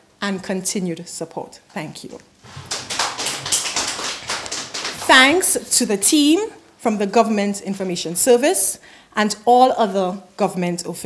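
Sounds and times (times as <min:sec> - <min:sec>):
audience applause: 0:02.4 - 0:05.6.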